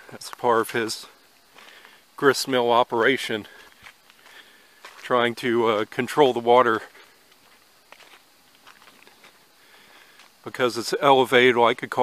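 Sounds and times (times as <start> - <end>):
footsteps on dirt path: 0.2 - 2.1, 2.8 - 10.6.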